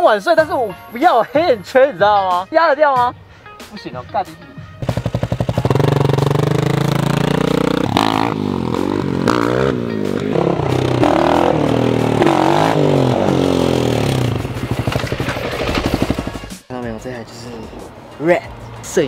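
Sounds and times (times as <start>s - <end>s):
dirt bike engine revving: 4.8s - 16.6s.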